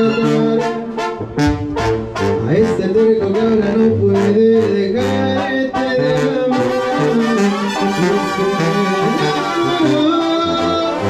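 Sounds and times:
brass band music: 0.0s - 11.0s.

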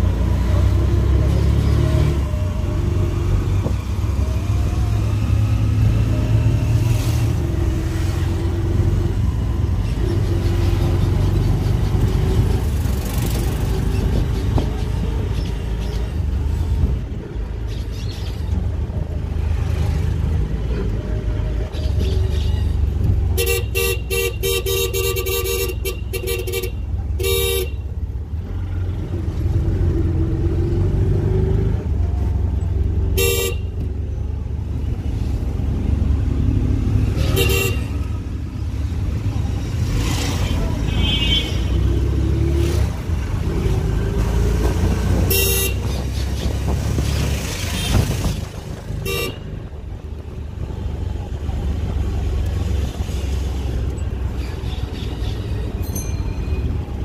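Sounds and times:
traffic engine and road rumble: 0.0s - 57.0s
vehicle horns honking: 23.4s - 27.9s, 33.2s - 33.8s, 37.2s - 38.2s, 40.4s - 42.0s, 45.2s - 46.0s, 49.0s - 49.6s.

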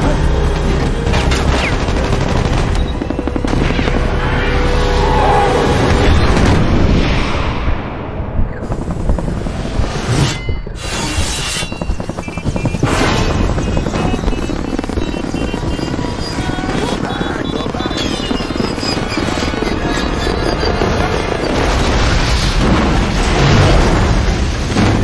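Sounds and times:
helicopter rotor chopping: 0.0s - 6.5s, 8.5s - 25.0s
film music score: 0.0s - 15.0s.

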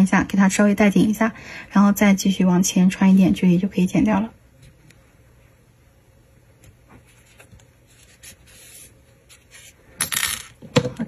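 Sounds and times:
scratchy rustle: 7.0s - 9.8s.

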